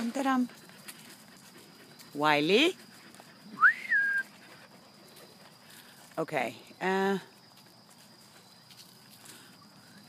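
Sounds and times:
footsteps on dry leaves: 0:07.4 - 0:10.0.

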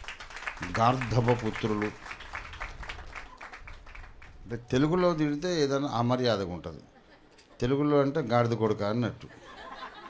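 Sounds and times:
faint scattered clapping: 0:00.0 - 0:04.5.

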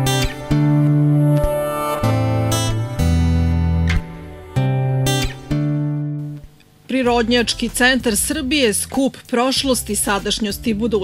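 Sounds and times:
strummed acoustic guitar: 0:00.0 - 0:06.6.

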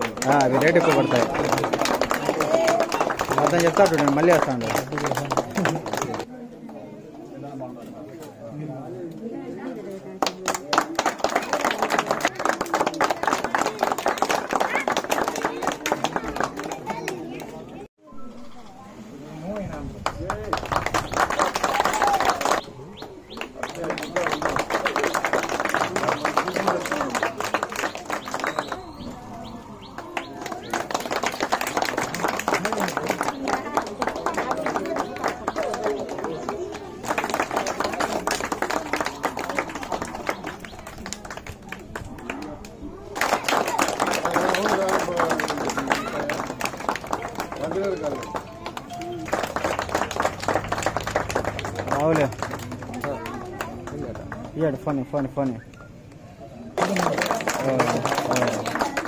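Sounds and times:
people clapping fast: 0:00.0 - 0:06.3, 0:10.1 - 0:17.6, 0:19.5 - 0:56.2, 0:56.8 - 0:59.0
people talking at once: 0:00.0 - 0:59.0
voices: 0:00.0 - 0:59.0.

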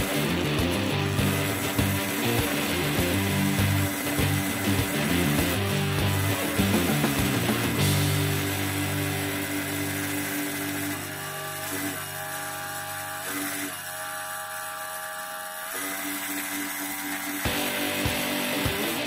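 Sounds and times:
rock music with a beat: 0:00.0 - 0:10.7, 0:17.4 - 0:19.0
high-pitched electric motor whine: 0:00.0 - 0:19.0.

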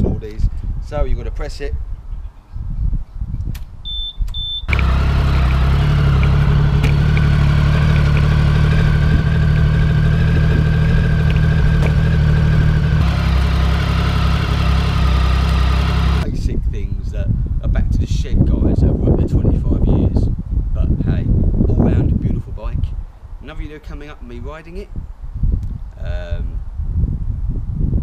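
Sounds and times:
motorcycle alarm beeps: 0:03.8 - 0:04.8
motorcycle engine starting and idling: 0:04.7 - 0:16.2.

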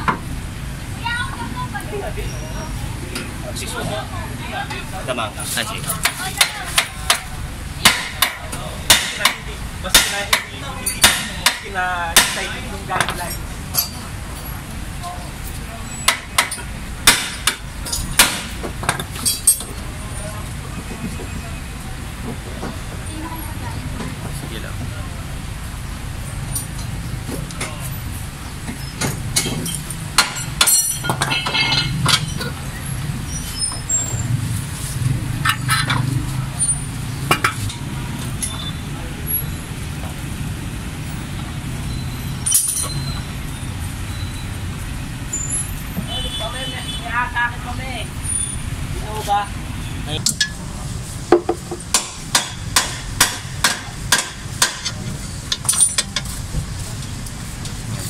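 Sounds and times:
low shop and traffic rumble: 0:00.0 - 0:58.0
wrenches clanking on steel parts: 0:12.4 - 0:14.0, 0:15.5 - 0:19.8, 0:26.4 - 0:27.8, 0:28.6 - 0:34.3, 0:35.4 - 0:38.8, 0:41.9 - 0:43.3, 0:50.2 - 0:50.6, 0:51.4 - 0:56.6.

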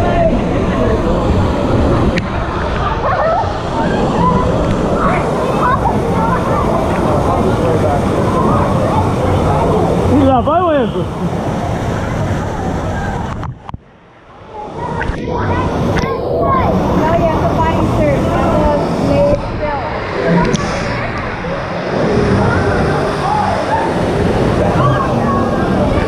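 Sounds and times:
swimmers' voices: 0:00.0 - 0:26.0.

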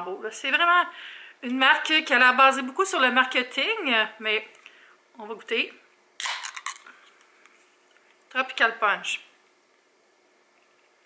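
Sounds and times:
can popping open with hiss: 0:06.2 - 0:06.9.

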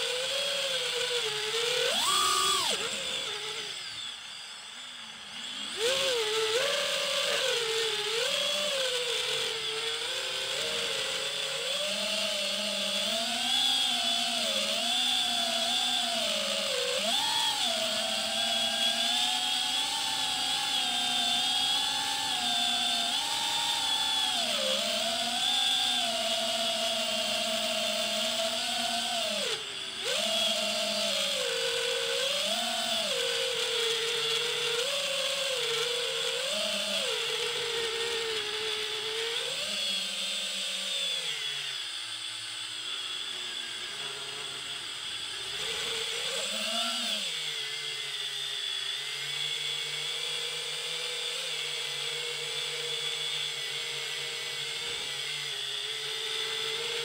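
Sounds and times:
drone propellers whining: 0:00.0 - 0:52.3.

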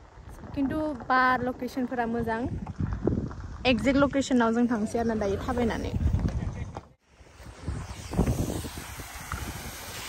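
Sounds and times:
wind rumbling on microphone: 0:00.0 - 0:10.0.

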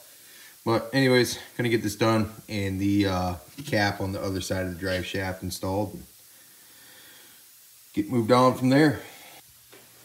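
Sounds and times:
faint room tone hiss: 0:00.0 - 0:10.0.

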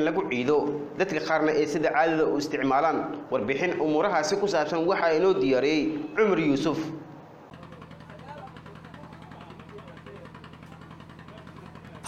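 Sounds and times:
faint voices: 0:07.5 - 0:12.0
low mechanical hum: 0:07.5 - 0:12.0.

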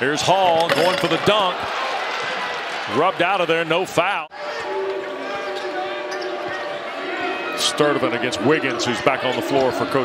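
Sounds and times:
arena crowd murmur: 0:01.4 - 0:10.0.

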